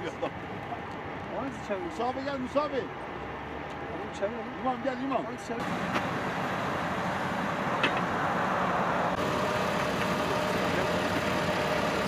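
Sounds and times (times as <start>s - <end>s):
diesel truck engine running: 5.6s - 12.0s.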